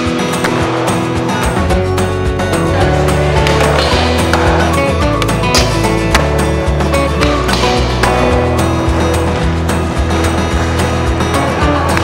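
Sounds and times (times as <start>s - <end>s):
backing music: 0.0s - 12.0s
skateboard rolling on concrete: 0.0s - 12.0s.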